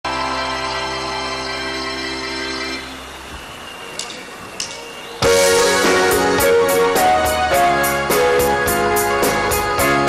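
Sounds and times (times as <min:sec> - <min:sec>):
electronic keyboard chord: 0:05.2 - 0:10.0.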